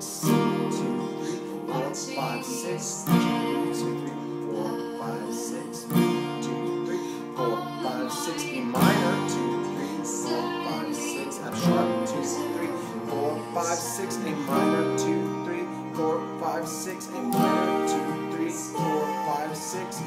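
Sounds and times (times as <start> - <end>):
acoustic guitar strumming: 0.0 - 20.0
recorded song playing: 0.0 - 20.0.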